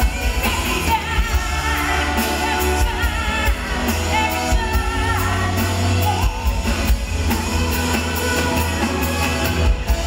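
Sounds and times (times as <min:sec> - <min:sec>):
pop-rock band playing: 0:00.0 - 0:10.0
women singing: 0:00.0 - 0:10.0.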